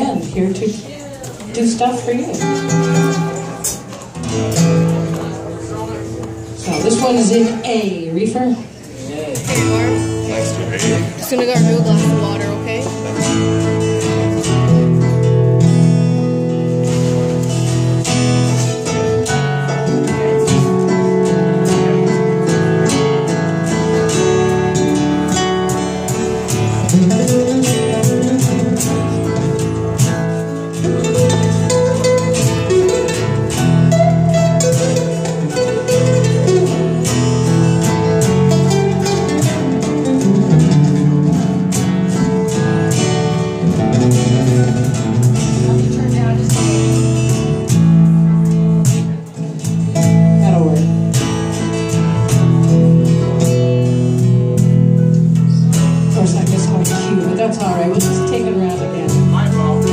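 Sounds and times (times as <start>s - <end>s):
acoustic and electric guitars: 0.0s - 59.9s.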